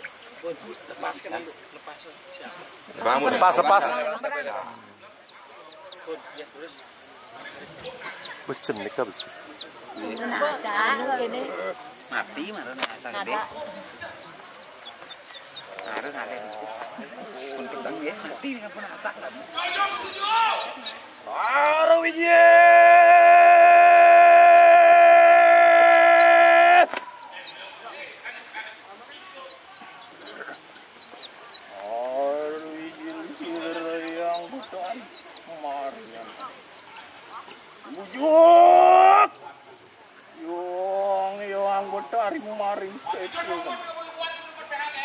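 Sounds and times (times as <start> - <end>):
masked performer roaring cry: 22.4 - 26.9, 38.2 - 39.3.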